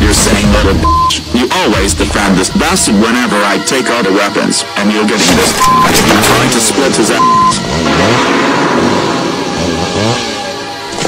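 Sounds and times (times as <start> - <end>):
background music: 0.0 - 11.0
censor beep: 0.8 - 1.2, 5.6 - 5.9, 7.1 - 7.6
cartoon chainsaw revving: 7.6 - 10.4.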